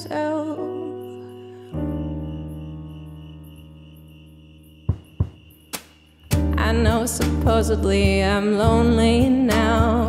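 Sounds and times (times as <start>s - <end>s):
crickets chirping: 0.0s - 10.0s
held digital piano chord: 0.0s - 10.0s.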